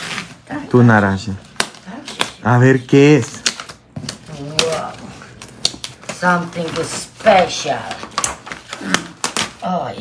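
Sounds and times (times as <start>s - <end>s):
wrapping paper rustling and tearing: 0.0s - 10.0s.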